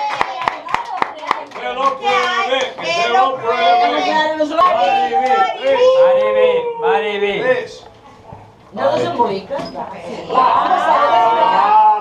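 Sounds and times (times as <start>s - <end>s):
group clapping in time: 0.0s - 2.8s.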